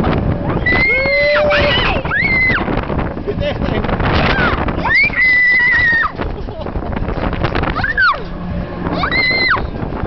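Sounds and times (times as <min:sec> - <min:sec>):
wind buffeting microphone: 0:00.0 - 0:10.0
rider screaming: 0:00.6 - 0:02.7.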